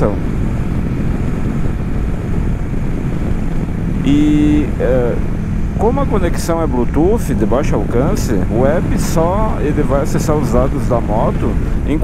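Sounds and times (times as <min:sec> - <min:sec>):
motorcycle engine droning: 0:00.0 - 0:12.0
road noise: 0:00.0 - 0:12.0
wind rushing over microphone: 0:00.0 - 0:12.0.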